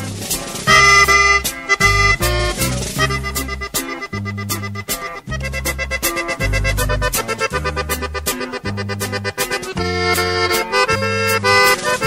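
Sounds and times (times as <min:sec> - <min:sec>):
accordion playing: 0:00.0 - 0:12.0
percussion hits: 0:00.0 - 0:12.0
bass line: 0:00.7 - 0:12.0.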